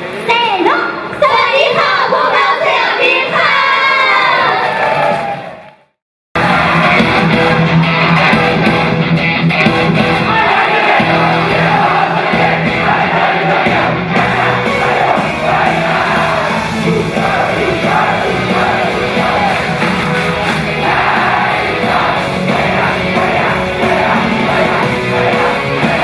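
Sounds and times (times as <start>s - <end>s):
crowd shouting: 1.6s - 5.7s, 6.4s - 26.0s
fans yelling along: 6.4s - 26.0s
upbeat pop song over loudspeakers: 6.4s - 26.0s.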